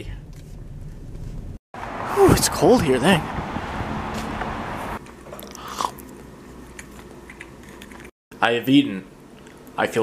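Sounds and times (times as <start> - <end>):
street noise: 1.8 - 5.0
person chewing food: 5.3 - 8.1.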